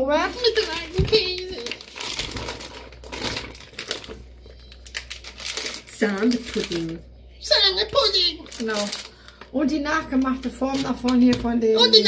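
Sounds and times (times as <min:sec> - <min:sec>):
plastic packaging crinkling: 0:00.2 - 0:12.0.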